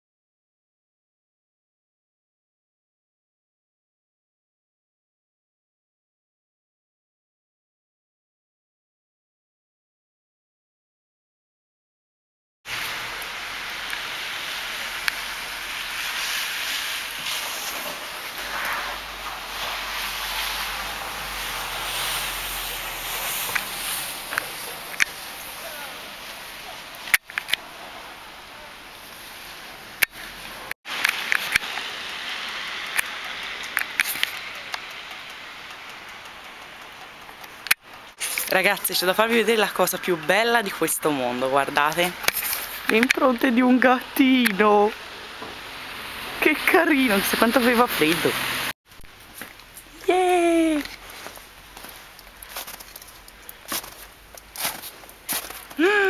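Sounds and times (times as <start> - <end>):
outdoor background hiss: 12.7 - 56.0
light ticks and patters: 30.0 - 40.7, 50.8 - 55.8.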